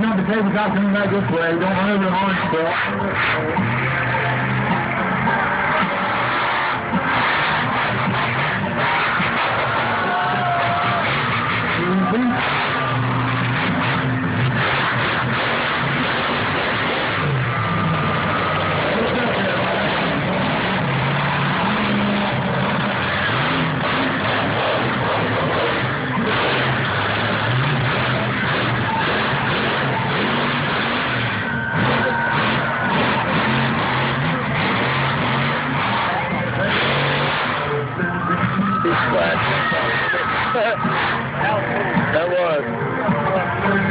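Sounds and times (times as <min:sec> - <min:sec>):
crowd noise: 0:00.0 - 0:43.9
truck engine revving: 0:00.0 - 0:43.9.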